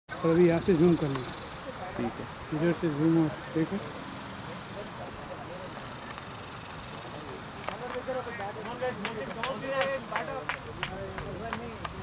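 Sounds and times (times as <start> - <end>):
faint distant voices: 0.1 - 12.0.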